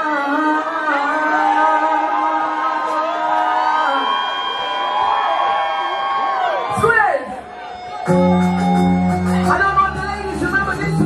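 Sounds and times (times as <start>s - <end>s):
live concert music with singing: 0.0s - 11.0s.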